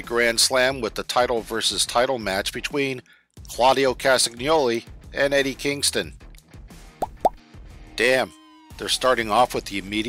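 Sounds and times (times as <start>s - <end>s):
faint background music: 0.0s - 10.0s
rising blip sound effects: 7.0s - 7.4s.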